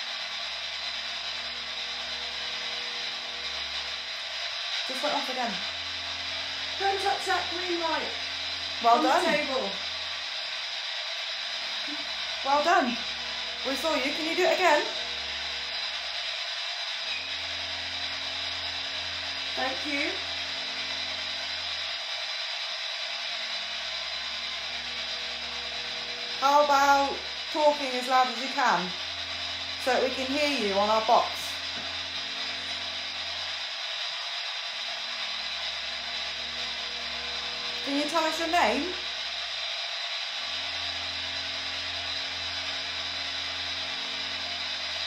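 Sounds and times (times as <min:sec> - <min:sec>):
radio static hiss: 0:04.9 - 0:10.2.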